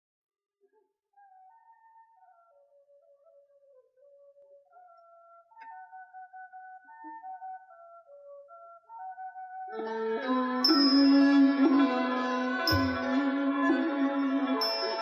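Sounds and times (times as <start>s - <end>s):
flute playing slow melody: 1.2s - 15.0s.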